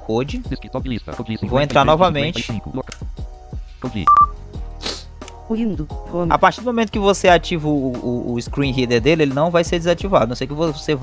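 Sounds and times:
background music: 0:00.0 - 0:11.0
electronic beep: 0:04.0 - 0:04.4.

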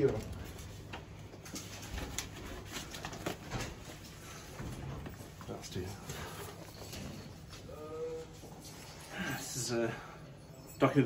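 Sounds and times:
paper rustling: 0:00.0 - 0:06.9.

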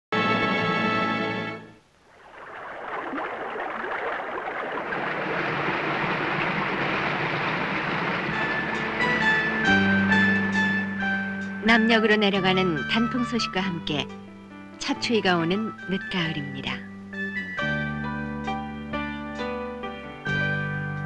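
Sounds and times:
waterfall rushing: 0:02.2 - 0:09.8
music notes: 0:07.8 - 0:21.0
held musical chord: 0:08.0 - 0:14.7.

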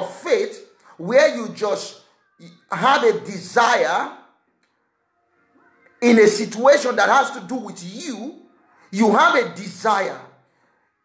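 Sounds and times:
man speaking: 0:00.0 - 0:04.3, 0:06.0 - 0:10.3.

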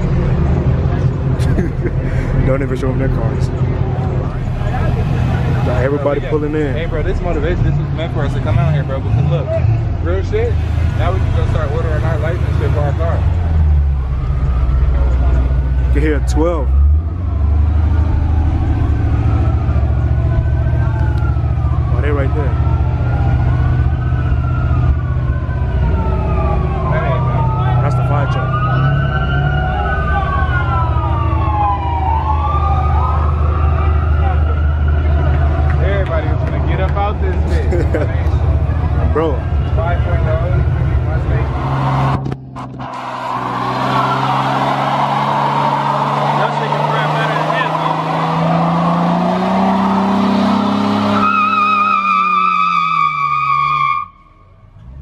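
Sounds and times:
muscle car engines rumbling: 0:00.0 - 0:55.0
siren wailing: 0:11.2 - 0:35.7, 0:38.7 - 0:54.6
tyres squealing: 0:42.8 - 0:54.2.

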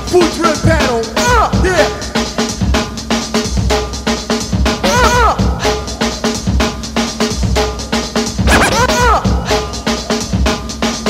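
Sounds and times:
loud breakbeat music: 0:00.0 - 0:11.0.

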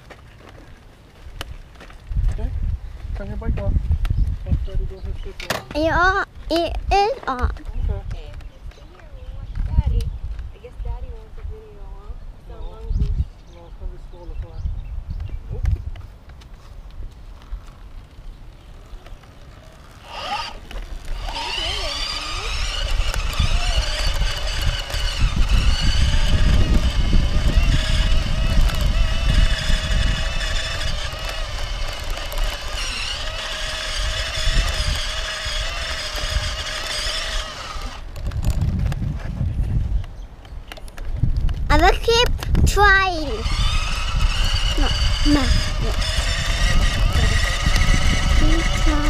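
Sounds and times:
tyres rumbling on dirt trail: 0:16.1 - 0:40.0, 0:41.0 - 0:49.0
electric bike motor whining: 0:17.5 - 0:38.8, 0:43.2 - 0:49.0.

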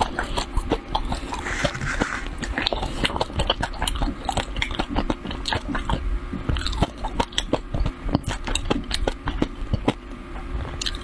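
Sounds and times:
close-miked chewing: 0:00.0 - 0:10.0, 0:10.7 - 0:11.0.

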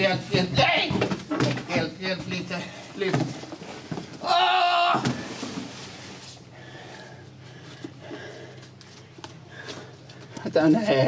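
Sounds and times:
steady low hum: 0:00.0 - 0:11.0
person crying out: 0:04.2 - 0:05.2.

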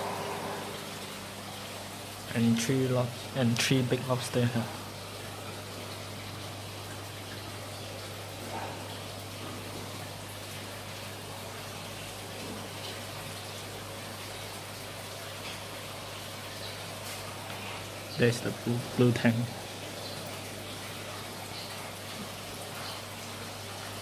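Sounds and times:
circulating water rushing: 0:00.0 - 0:24.0.

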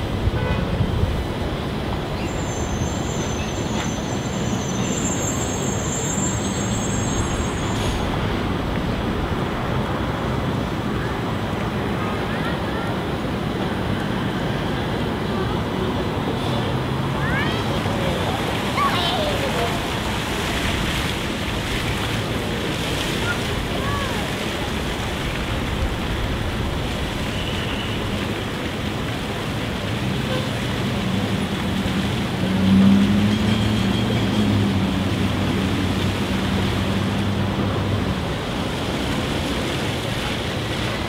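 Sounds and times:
fountain jets splashing: 0:00.0 - 0:41.0.

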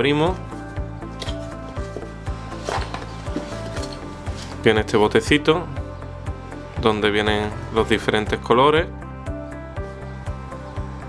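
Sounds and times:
background music with steady beat: 0:00.0 - 0:11.0
cardboard box rustling and scraping: 0:01.4 - 0:04.6.

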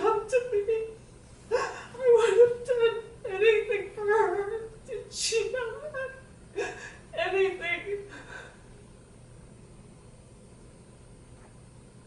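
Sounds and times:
woman sobbing: 0:01.5 - 0:08.6
breathy gasp: 0:08.1 - 0:08.7.

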